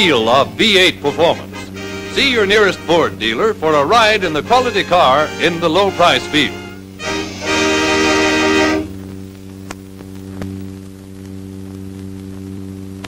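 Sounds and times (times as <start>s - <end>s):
steady low hum: 0.0s - 13.0s
music final chord: 1.0s - 9.0s.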